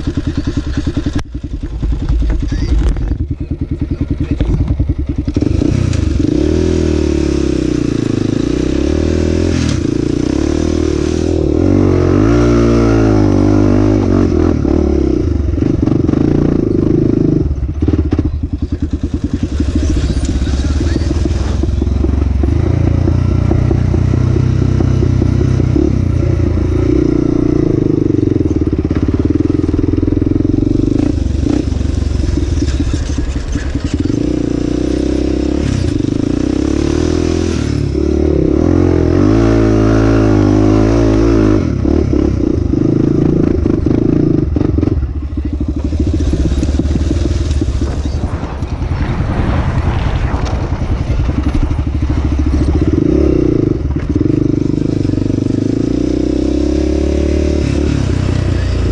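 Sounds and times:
quad bike engine revving: 0.0 - 48.7, 50.5 - 58.9.

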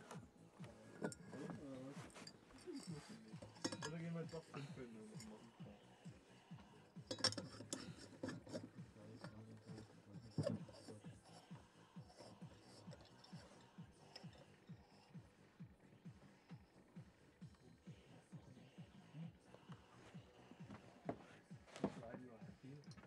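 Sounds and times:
threads rubbing: 0.0 - 15.2.

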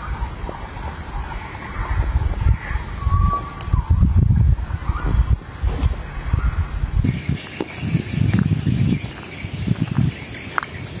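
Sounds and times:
outdoor ambience: 0.0 - 11.0
wind buffeting microphone: 0.0 - 11.0.

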